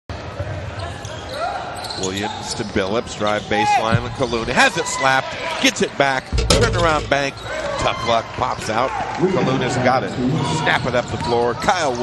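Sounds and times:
basketball bouncing on court: 0:03.9 - 0:04.6.

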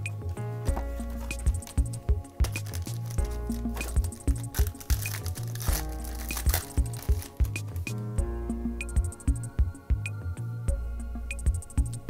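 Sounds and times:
music with repeating beat: 0:00.0 - 0:12.0
foil card pack crinkling: 0:00.7 - 0:08.0.

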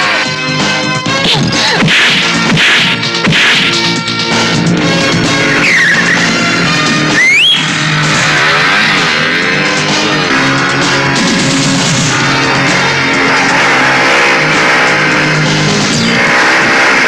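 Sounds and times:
dramatic background music: 0:00.0 - 0:17.0
motorcycle engine: 0:01.8 - 0:17.0
tires skidding: 0:05.0 - 0:17.0.

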